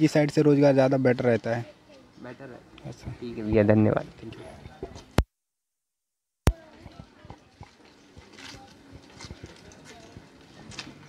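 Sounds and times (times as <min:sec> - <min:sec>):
faint voices: 0:06.5 - 0:11.0.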